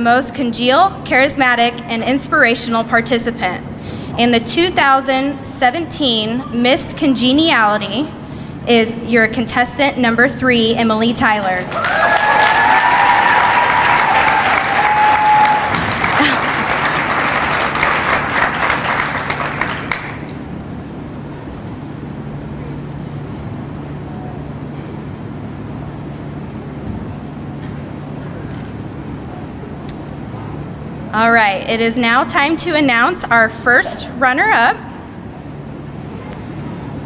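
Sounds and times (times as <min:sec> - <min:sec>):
low hum in hall: 0:00.0 - 0:37.0
high-pitched cheer: 0:11.7 - 0:18.6
audience applauding: 0:11.7 - 0:20.3.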